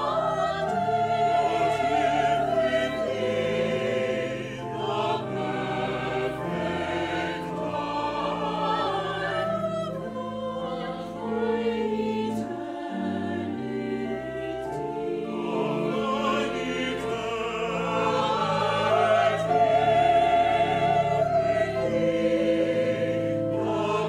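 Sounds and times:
church choir singing: 0.0s - 24.0s
pipe organ low notes: 0.0s - 24.0s.

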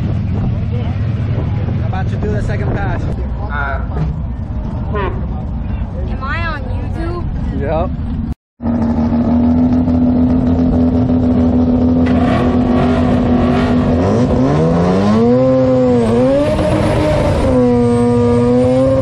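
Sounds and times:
rotary engine revving: 8.6s - 19.0s.

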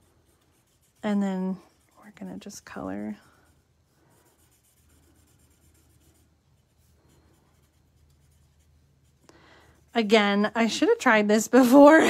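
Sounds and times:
marker scratching on cardstock: 0.0s - 10.1s.

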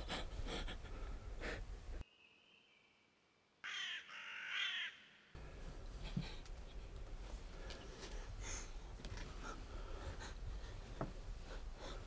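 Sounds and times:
crow cawing: 3.6s - 5.3s.

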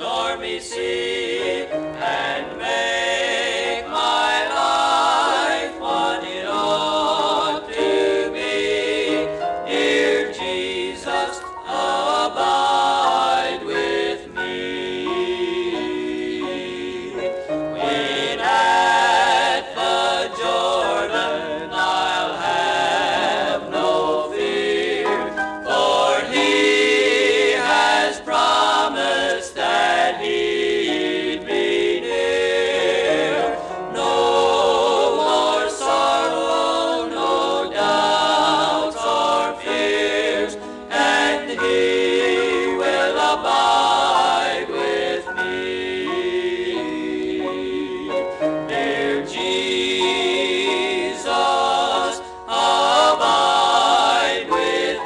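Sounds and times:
male quartet singing a hymn: 0.0s - 55.0s.

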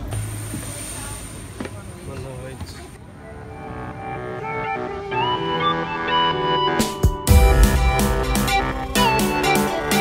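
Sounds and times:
music: 3.1s - 10.0s.

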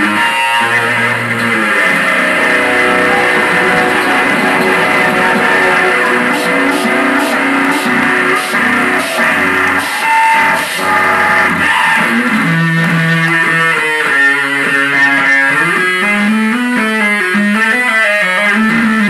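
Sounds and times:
live rock band playing loudly: 1.8s - 13.2s.

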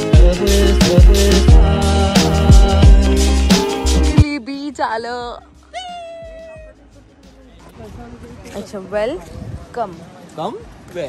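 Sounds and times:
music: 0.0s - 10.6s.

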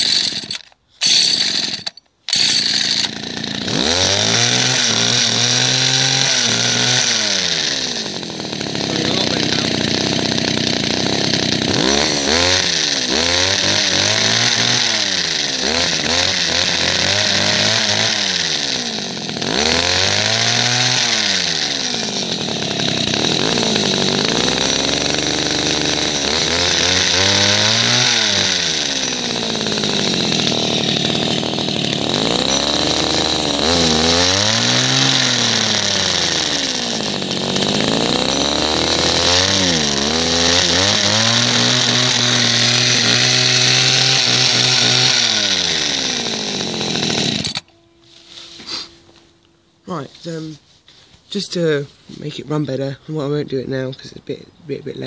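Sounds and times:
hedge cutter engine revving: 0.0s - 50.6s.

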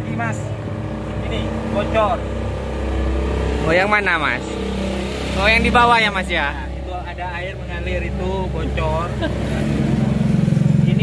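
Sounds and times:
vehicle engine pulsing: 0.0s - 11.0s.

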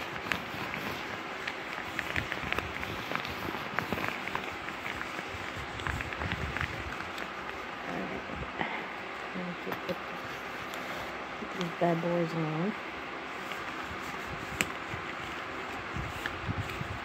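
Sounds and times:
cloth rustling against microphone: 0.0s - 17.0s.

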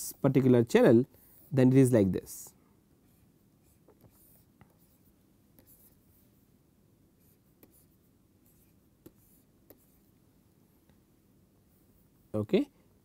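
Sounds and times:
stylus tapping and scratching on tablet: 3.0s - 6.4s, 7.2s - 10.2s.

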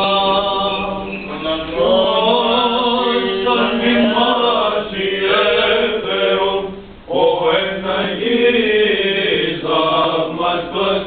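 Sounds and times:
held drone note: 0.0s - 6.9s
chanters singing: 0.0s - 11.0s.

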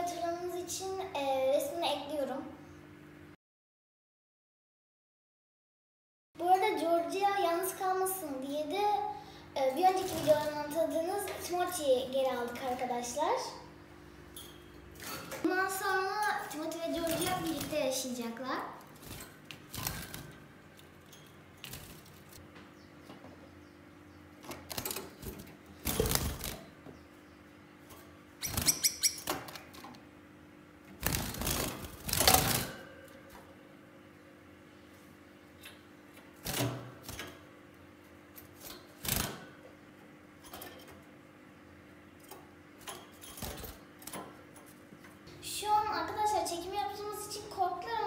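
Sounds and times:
faint steady hum: 6.4s - 48.0s
birds fluttering in cage: 9.8s - 11.6s, 14.4s - 23.3s, 24.3s - 27.1s, 27.8s - 30.0s, 30.8s - 33.5s, 36.2s - 39.6s, 40.4s - 41.2s, 42.2s - 45.2s.

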